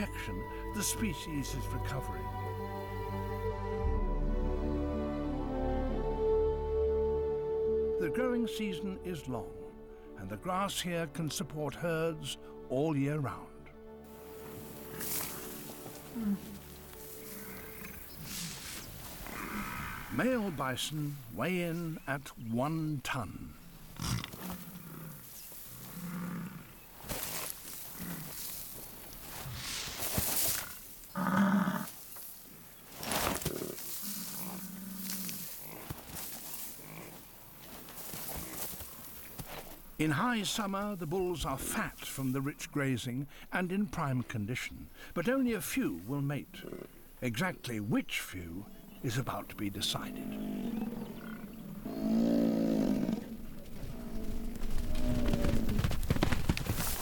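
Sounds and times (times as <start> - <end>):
body scuffing and thudding on ground: 14.3 - 17.2, 27.0 - 31.0, 31.9 - 39.8, 55.7 - 57.0
bison bellowing: 19.2 - 20.7, 48.6 - 55.8.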